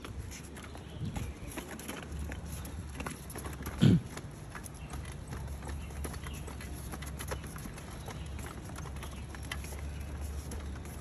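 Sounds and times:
plastic wheels rattling over paving: 0.0 - 11.0.

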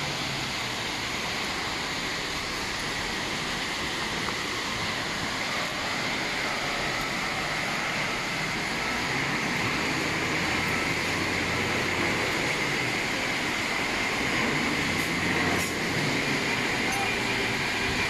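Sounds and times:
conveyor belts rumbling and rattling: 4.8 - 18.0.

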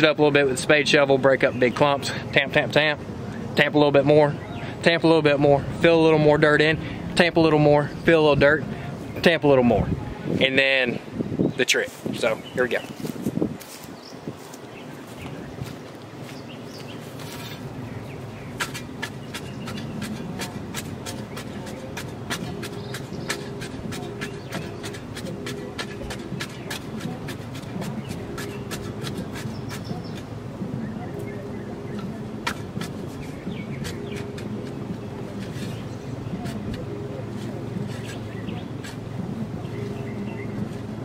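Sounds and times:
low background noise: 0.0 - 41.0
shovel scraping soil: 17.0 - 17.7, 18.4 - 30.4, 31.9 - 40.9.

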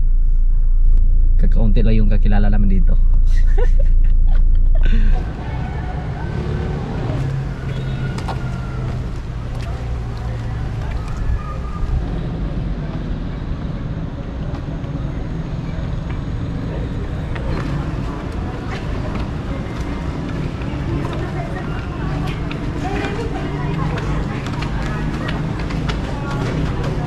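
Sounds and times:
traffic rumble: 0.0 - 27.0
faint voices: 4.9 - 27.0.

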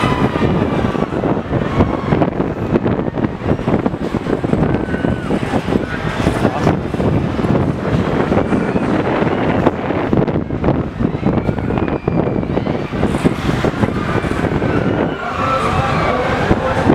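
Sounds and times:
wind buffeting microphone: 0.0 - 16.9.

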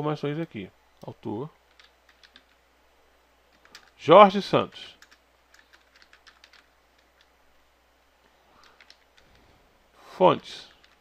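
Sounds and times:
computer keyboard typing: 1.7 - 2.6, 3.5 - 4.0, 5.0 - 7.3, 8.6 - 9.4, 10.7 - 11.0.

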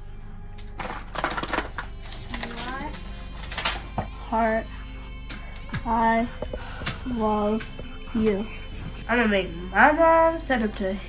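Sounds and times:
soft background music: 0.0 - 11.0
marker scribbling on paper: 7.2 - 10.0.

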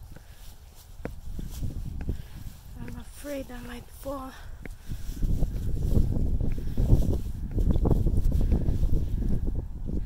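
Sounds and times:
footsteps on concrete stairs: 0.0 - 9.0
wind rumble on microphone: 0.0 - 10.0.

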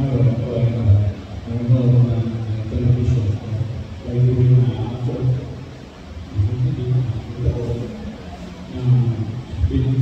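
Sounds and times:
man preaching: 0.0 - 5.7, 6.3 - 8.0, 8.7 - 10.0.

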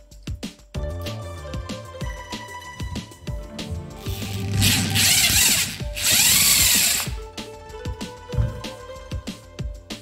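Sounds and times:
cordless drill running: 4.1 - 7.2.

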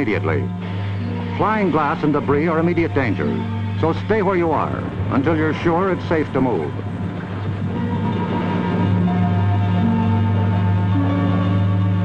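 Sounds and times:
dramatic film score drone: 0.0 - 12.0.

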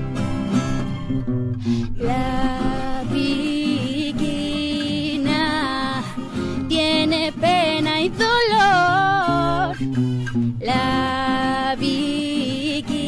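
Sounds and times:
strummed acoustic guitar: 0.0 - 13.0
woman singing slow song: 2.0 - 9.9, 10.6 - 13.0.

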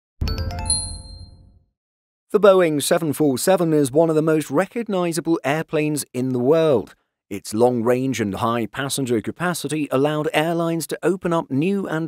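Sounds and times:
bright chime strikes: 0.2 - 1.6.

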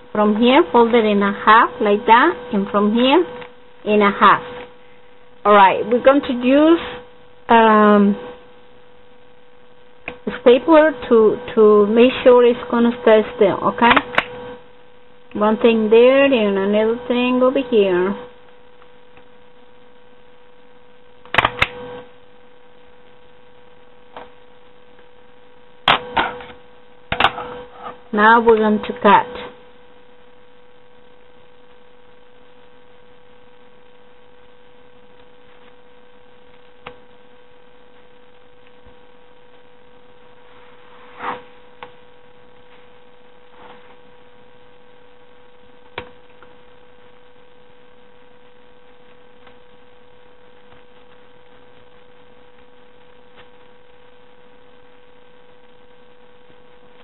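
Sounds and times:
faint steady hum: 0.0 - 57.0.

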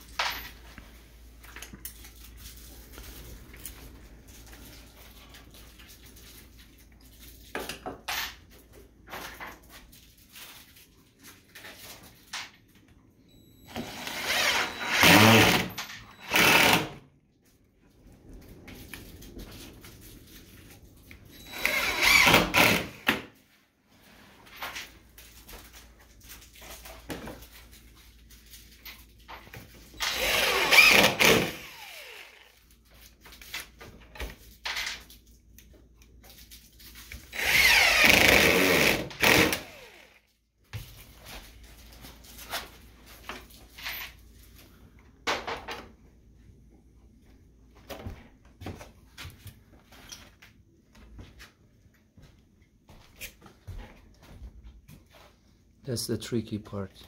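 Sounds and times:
impact driver driving screws: 13.7 - 17.0, 21.5 - 23.3, 30.0 - 32.5, 37.3 - 40.2.

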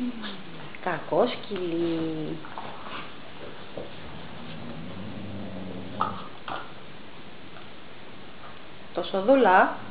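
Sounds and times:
dog growling: 3.7 - 6.8.

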